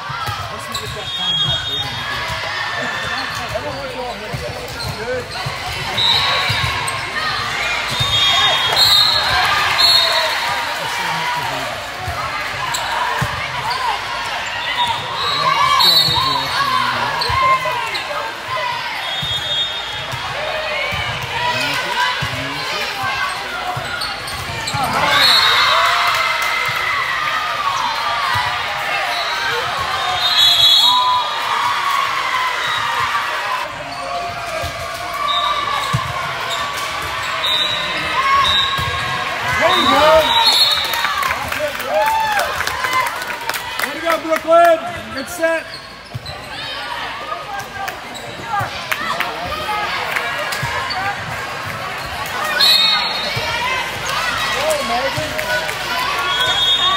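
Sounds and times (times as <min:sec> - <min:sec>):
people calling out and chattering: 0:00.0 - 0:56.9
sneakers squeaking on court: 0:00.3 - 0:02.4, 0:03.0 - 0:09.5, 0:12.6 - 0:18.3, 0:23.2 - 0:25.6, 0:45.0 - 0:46.9, 0:47.6 - 0:48.8.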